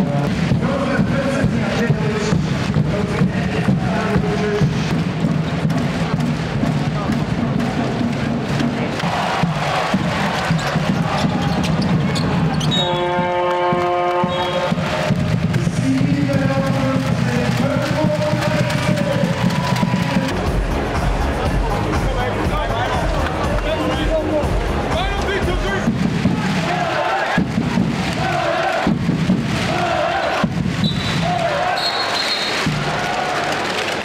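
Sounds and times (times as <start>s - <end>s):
arena music: 0.0s - 34.0s
crowd chanting: 7.6s - 34.0s
basketball bouncing on court: 8.0s - 19.9s
steady horn: 12.7s - 15.8s.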